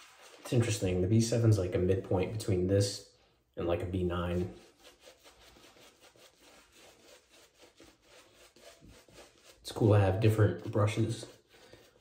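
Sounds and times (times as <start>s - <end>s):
brush bristles rubbing lather: 4.1s - 12.0s.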